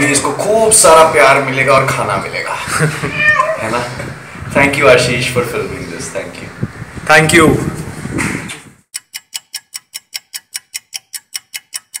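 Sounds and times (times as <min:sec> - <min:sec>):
rapid clock ticking: 0:08.9 - 0:12.0.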